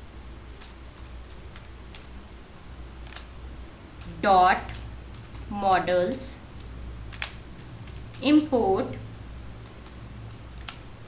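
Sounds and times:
low hum: 0.0 - 11.0
keyboard typing: 0.6 - 2.2, 3.0 - 3.3, 4.0 - 8.5, 9.6 - 11.0.

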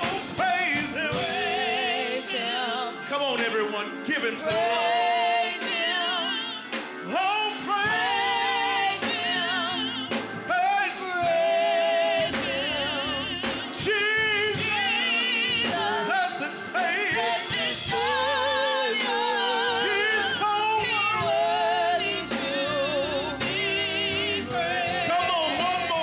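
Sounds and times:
choir singing worship song: 0.0 - 26.0
drum kit: 0.0 - 26.0
keyboard: 0.0 - 26.0.

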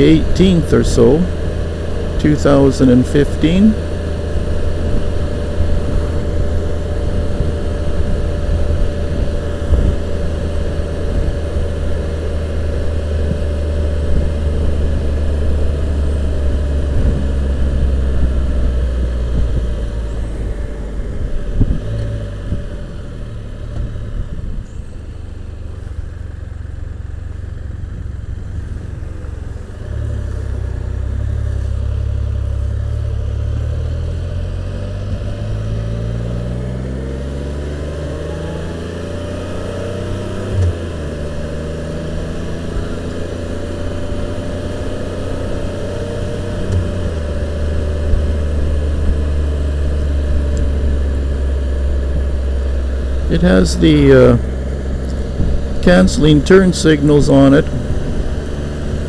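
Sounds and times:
trike engine accelerating: 0.0 - 59.0.

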